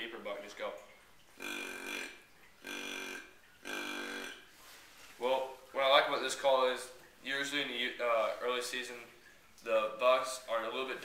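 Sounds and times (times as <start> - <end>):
deer grunt call: 1.4 - 4.5
person speaking: 5.2 - 11.0.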